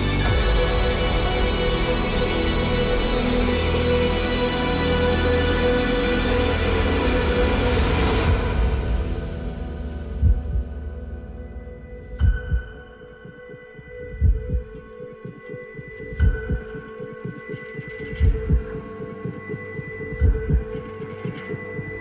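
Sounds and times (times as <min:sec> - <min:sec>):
droning hum with high tones: 0:00.0 - 0:22.0.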